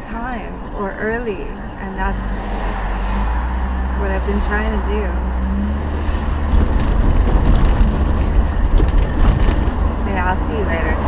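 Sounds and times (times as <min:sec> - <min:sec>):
car road and engine rumble: 0:00.0 - 0:11.0.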